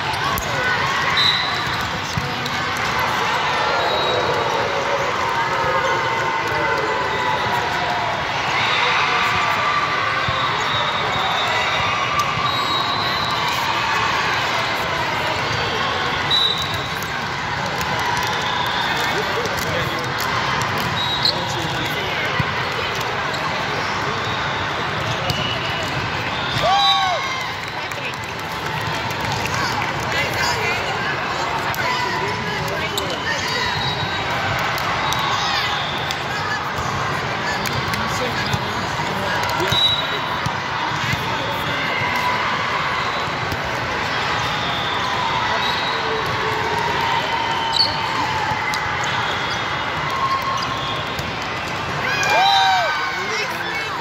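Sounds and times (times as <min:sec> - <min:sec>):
volleyballs hit and bouncing: 0:00.0 - 0:03.4, 0:16.6 - 0:23.7, 0:27.6 - 0:35.3
many voices chattering: 0:00.0 - 0:54.0.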